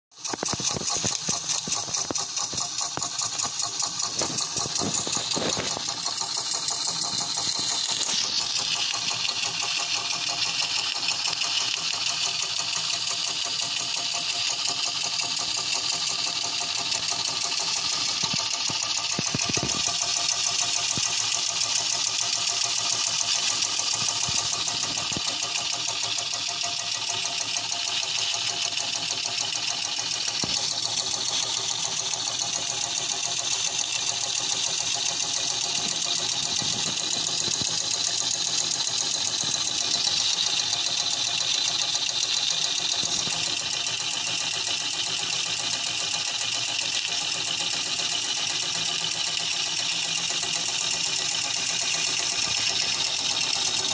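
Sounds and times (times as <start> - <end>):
steam engine exhaust beats: 0.2 - 53.9
steam hissing: 0.6 - 53.9.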